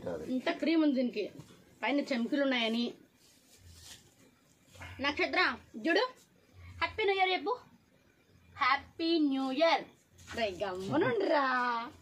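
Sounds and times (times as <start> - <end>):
faint low hum: 0.0 - 12.0
person speaking: 10.3 - 12.0.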